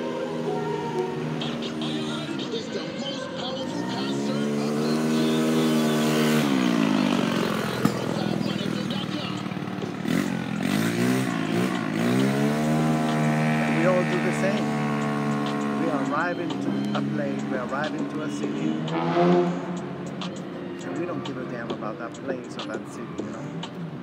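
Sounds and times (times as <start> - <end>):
vehicle engines accelerating: 0.0 - 24.0.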